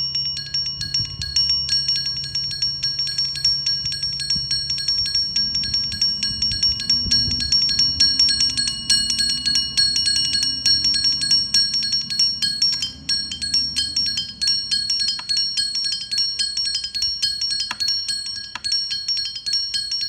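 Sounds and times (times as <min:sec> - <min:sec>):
faint low hum: 0:00.0 - 0:20.0.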